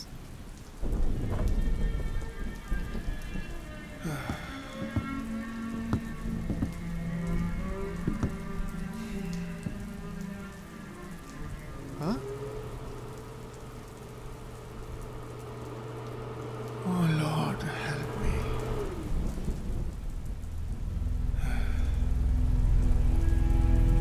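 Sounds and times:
low film score drone: 0:00.0 - 0:24.0
steady rain: 0:00.0 - 0:24.0.

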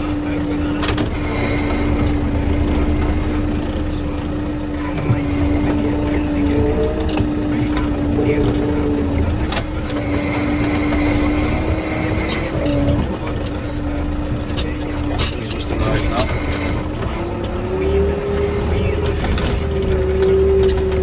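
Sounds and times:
tractor engine droning: 0:00.0 - 0:21.0.

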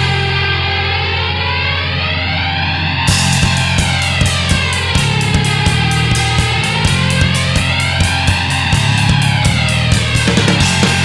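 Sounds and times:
distorted guitar and bass chord: 0:00.0 - 0:11.0.

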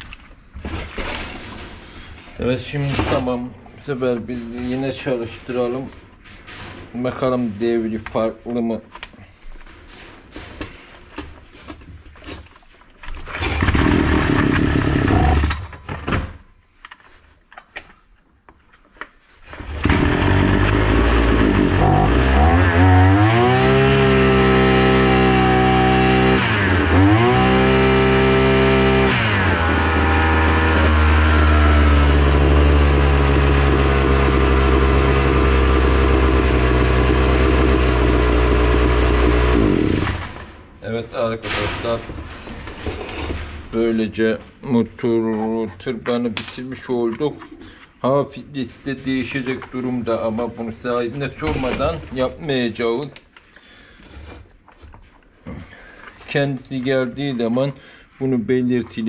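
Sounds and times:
brush cutter engine revving and idling: 0:13.3 - 0:15.6, 0:19.7 - 0:40.3.

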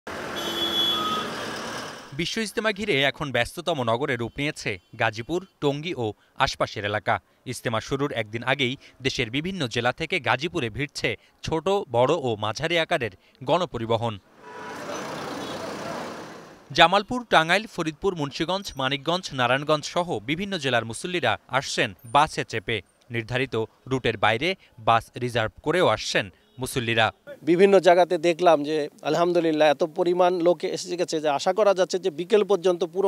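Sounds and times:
road traffic rushing: 0:00.1 - 0:02.4, 0:14.2 - 0:16.8
road traffic noise: 0:00.1 - 0:03.1, 0:08.6 - 0:09.0, 0:13.2 - 0:31.5.

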